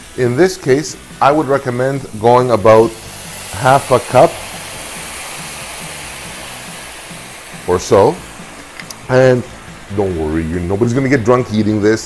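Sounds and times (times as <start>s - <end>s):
liquid sizzling in a hot pan: 0.0s - 12.0s.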